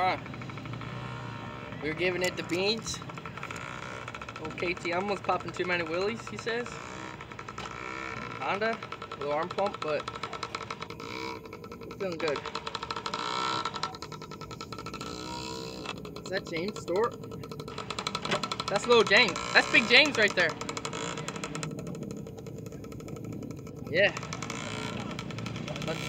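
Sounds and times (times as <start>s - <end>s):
dirt bike engines running: 0.0s - 26.0s.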